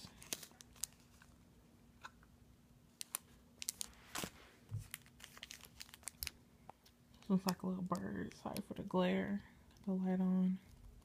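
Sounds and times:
cellophane packaging crinkling: 0.0s - 1.4s, 3.0s - 6.4s
faint steady hum: 0.0s - 11.0s.

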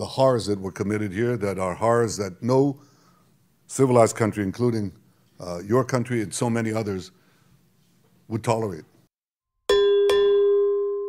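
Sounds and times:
bell ringing: 9.7s - 11.0s.

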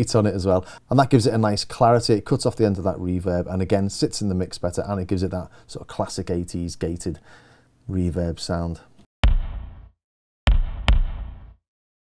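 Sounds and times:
kick drum with gated reverb: 9.2s - 9.9s, 10.5s - 11.6s.

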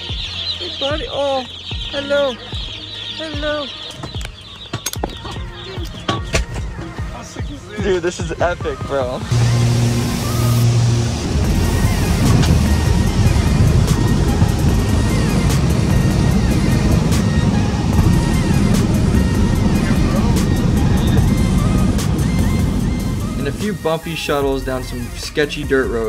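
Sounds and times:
background music with a beat: 0.0s - 26.0s
propeller plane engine drone: 9.3s - 23.8s.

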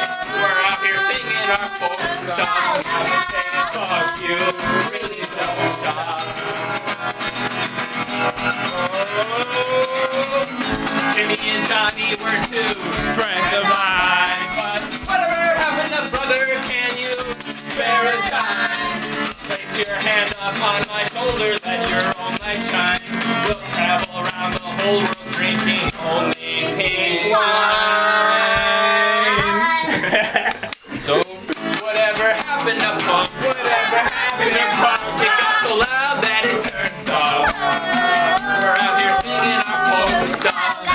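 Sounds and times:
person singing: 0.0s - 30.2s, 31.0s - 40.9s
jingling bells: 0.0s - 40.9s
shaken rattle percussion: 0.0s - 40.9s
strummed acoustic guitar: 0.0s - 40.9s.

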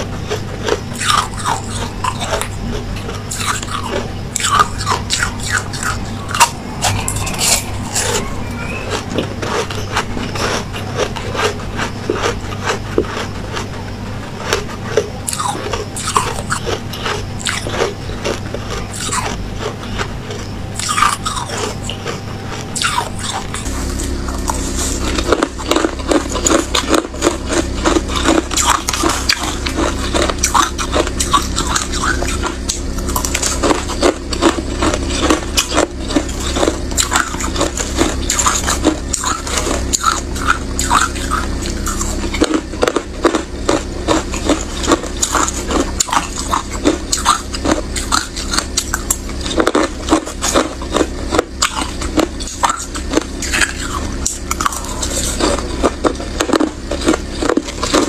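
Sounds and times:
ice crunching between teeth: 0.0s - 58.0s.

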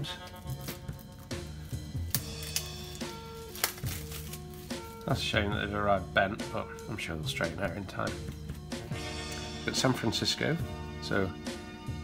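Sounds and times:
background music: 0.0s - 12.0s
plastic wrap crinkling: 0.2s - 5.3s.

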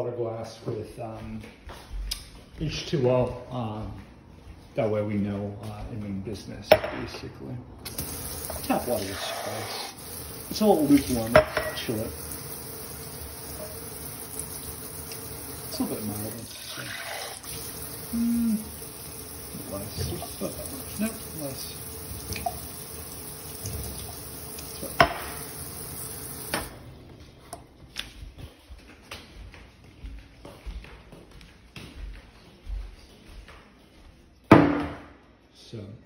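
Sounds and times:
footsteps on hard floor: 1.1s - 4.8s, 27.1s - 34.5s
faucet spray running into sink: 7.8s - 26.8s.

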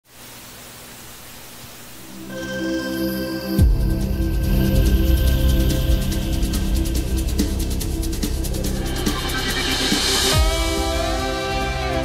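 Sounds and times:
steady hiss: 0.0s - 12.0s.

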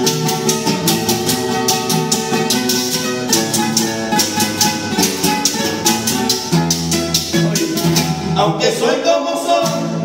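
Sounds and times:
hand percussion beat: 0.0s - 8.5s
acoustic guitars playing: 0.0s - 10.0s.

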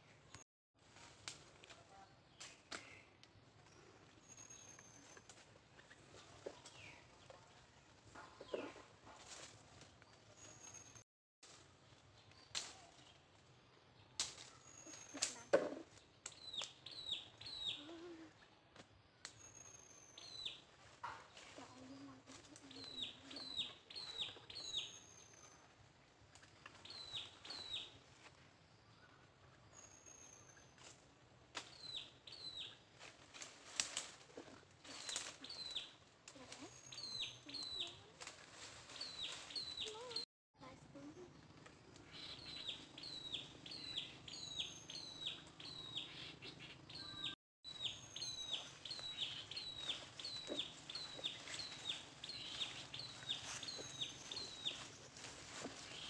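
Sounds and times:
birds chirping: 14.0s - 18.5s, 19.4s - 25.7s, 26.5s - 28.0s, 31.6s - 32.8s, 34.8s - 40.2s, 41.0s - 56.0s.

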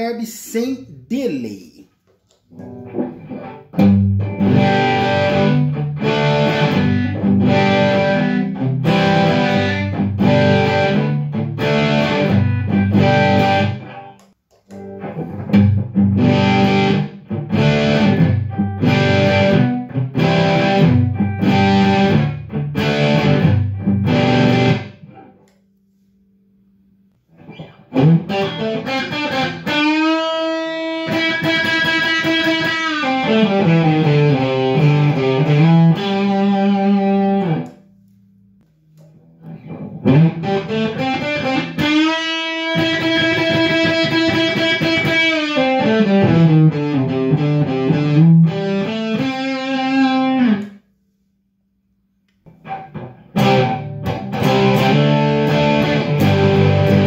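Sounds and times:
distorted electric guitar: 2.5s - 25.4s, 27.3s - 37.8s, 39.0s - 50.8s, 52.5s - 57.0s.

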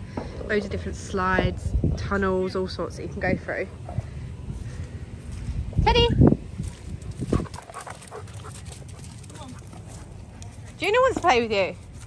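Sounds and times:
wind rumble on microphone: 0.0s - 9.2s
dogs moving about: 6.8s - 11.3s.

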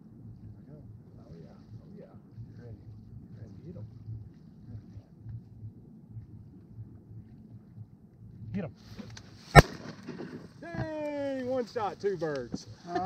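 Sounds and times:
faint low background noise: 0.0s - 13.0s
shotgun shot: 9.5s - 10.1s.

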